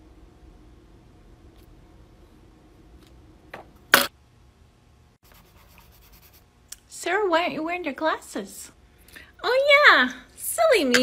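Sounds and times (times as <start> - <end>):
coloured pencil scratching on paper: 5.3 - 6.4.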